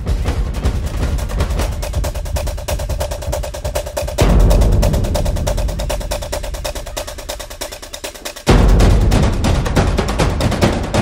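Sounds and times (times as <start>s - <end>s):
fast percussive action music: 0.0s - 11.0s.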